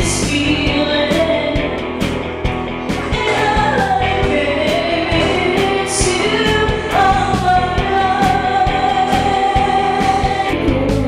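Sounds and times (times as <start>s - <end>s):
woman singing into a microphone: 0.0s - 1.9s, 3.0s - 11.0s
pop music with drum beat: 0.0s - 11.0s.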